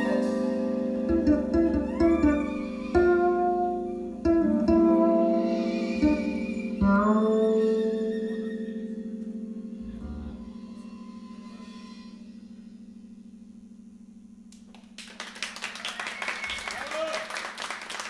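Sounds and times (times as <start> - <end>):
audience applause: 14.7 - 18.0.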